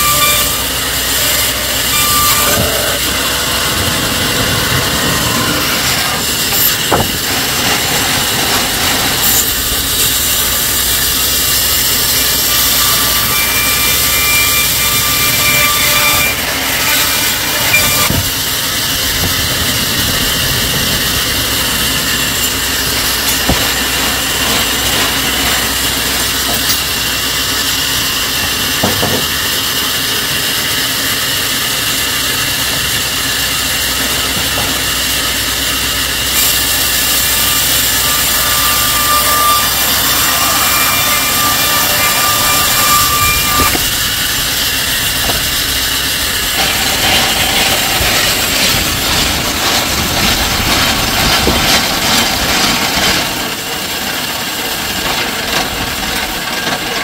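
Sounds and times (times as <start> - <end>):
saw cutting through wood: 0.0 - 57.0
thin whine: 33.7 - 52.1.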